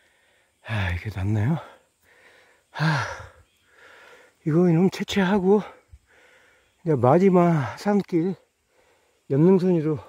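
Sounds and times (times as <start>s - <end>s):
man sighing: 2.7s - 4.0s.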